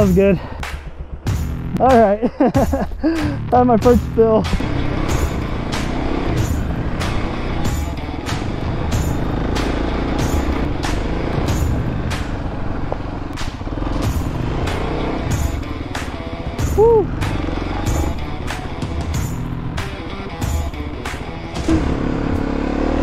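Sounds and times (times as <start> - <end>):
motorcycle engine running: 0.0 - 23.0
music with steady beat: 0.0 - 23.0.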